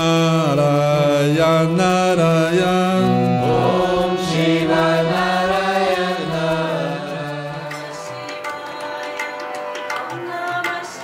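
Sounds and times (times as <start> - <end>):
low drone: 0.0 - 8.4
person chanting mantra: 0.0 - 9.0.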